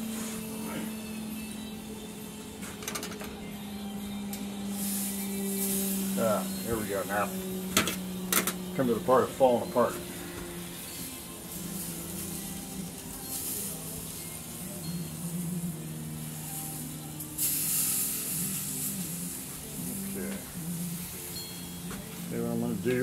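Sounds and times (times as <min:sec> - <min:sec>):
meat sizzling on a grill: 0:04.4 - 0:23.0.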